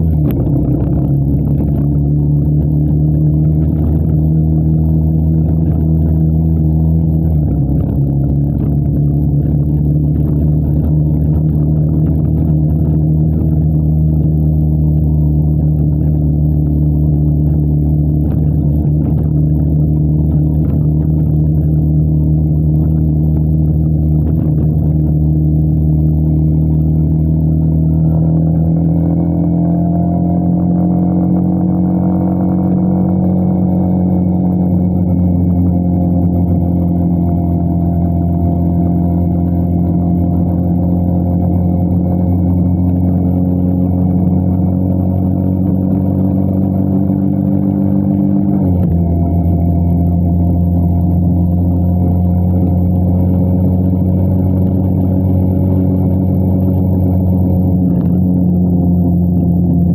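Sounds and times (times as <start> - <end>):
motorcycle engine accelerating: 0.0 - 59.9.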